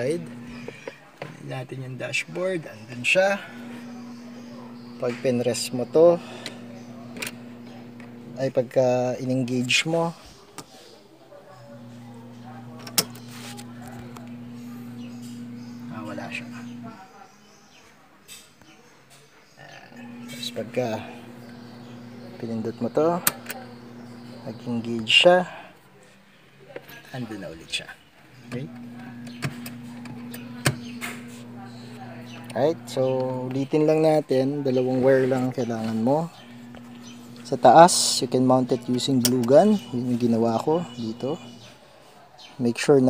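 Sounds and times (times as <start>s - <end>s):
steady low hum: 11.7s - 16.9s, 20.0s - 24.9s.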